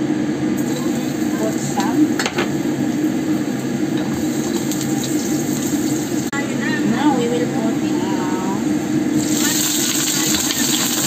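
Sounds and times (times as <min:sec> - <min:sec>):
steady low hum: 0:00.0 - 0:11.0
garlic sizzling in hot oil: 0:00.6 - 0:06.3, 0:08.7 - 0:11.0.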